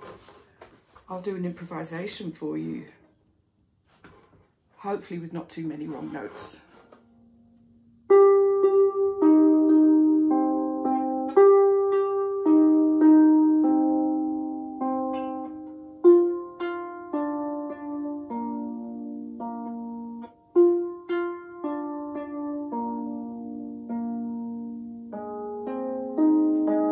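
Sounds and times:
harp plucked notes and chords: 0:07.0 - 0:26.9.

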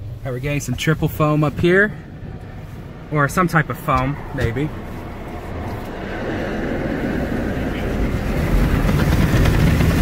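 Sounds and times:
car wash machinery rumble: 0:00.0 - 0:10.0.

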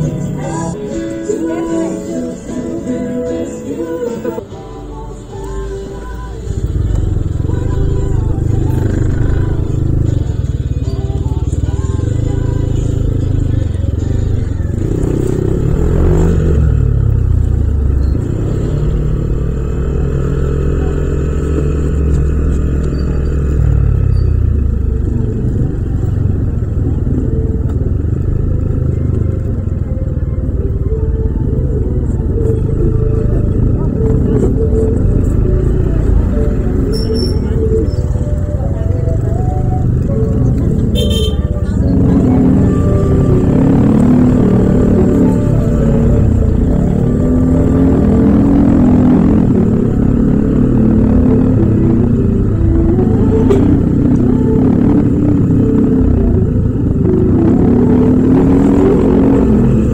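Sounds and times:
street traffic noise: 0:00.0 - 0:59.9
scooter engine running: 0:05.5 - 0:59.9.

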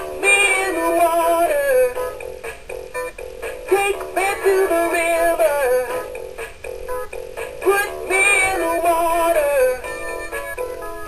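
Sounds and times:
plucked backing: 0:00.0 - 0:11.0
singing toy fish: 0:00.2 - 0:02.2, 0:03.7 - 0:06.1, 0:07.6 - 0:11.0.

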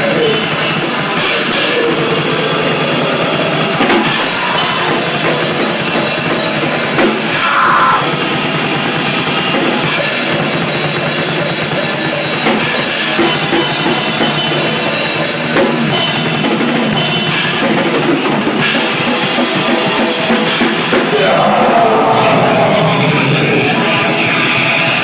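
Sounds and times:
fast drum kit strokes: 0:00.0 - 0:25.0
grindcore band playing live: 0:00.0 - 0:25.0.

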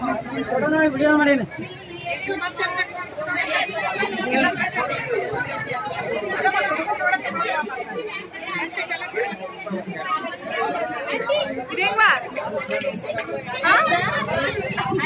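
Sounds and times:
people talking: 0:00.0 - 0:15.0.

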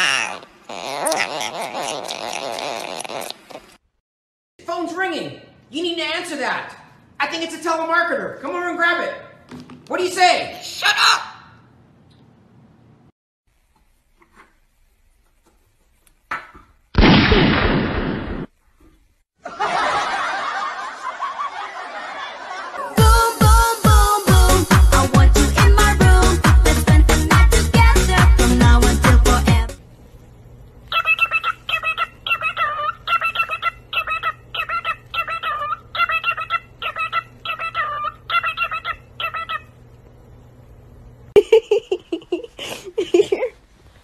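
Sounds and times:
music: 0:23.0 - 0:29.8
cockatiel chirping: 0:30.9 - 0:39.8.

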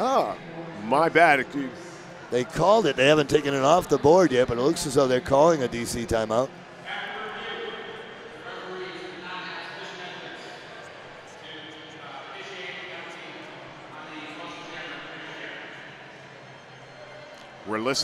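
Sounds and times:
indistinct chatter in a hall: 0:00.0 - 0:18.0.

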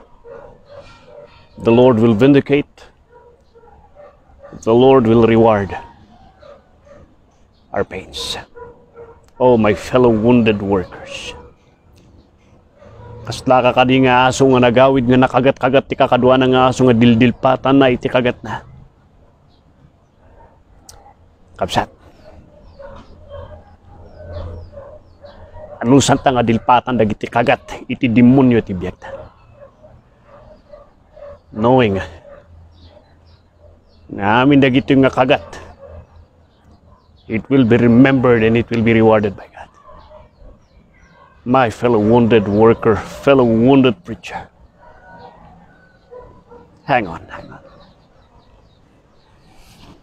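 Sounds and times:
faint dog barking and yipping: 0:00.0 - 0:50.0
man speaking: 0:01.6 - 0:03.0, 0:04.5 - 0:06.1, 0:07.7 - 0:08.6, 0:09.4 - 0:11.5, 0:13.2 - 0:18.8, 0:21.6 - 0:22.0, 0:25.8 - 0:29.3, 0:31.5 - 0:32.2, 0:34.1 - 0:35.7, 0:37.3 - 0:39.8, 0:41.4 - 0:44.6, 0:46.8 - 0:47.8.

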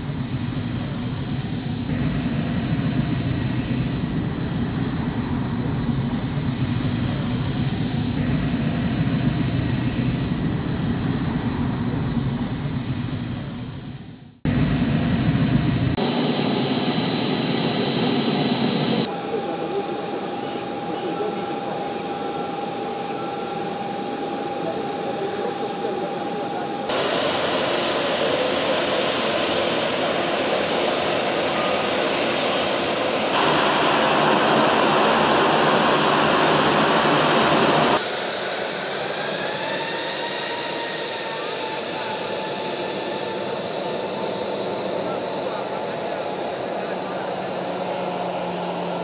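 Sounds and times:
jet engines roaring and whining: 0:00.0 - 0:49.0.

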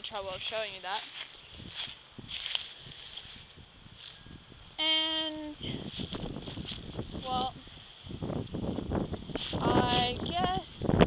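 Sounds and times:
footsteps through dry leaves: 0:00.0 - 0:04.3, 0:05.7 - 0:07.5, 0:08.6 - 0:10.4.

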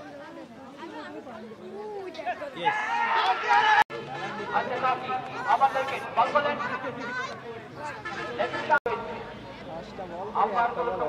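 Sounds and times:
people talking and shouting: 0:00.0 - 0:11.0.

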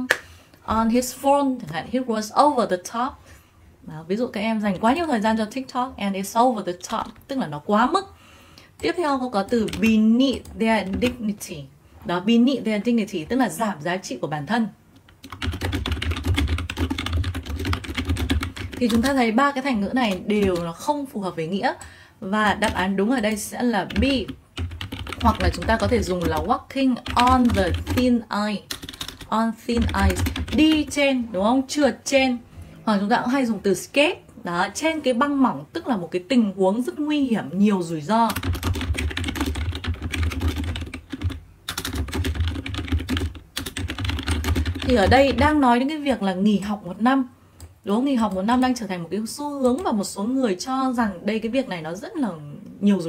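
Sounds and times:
typing on computer keyboard: 0:09.5 - 0:11.2, 0:15.0 - 0:19.2, 0:22.5 - 0:28.1, 0:28.7 - 0:31.0, 0:38.3 - 0:45.6.

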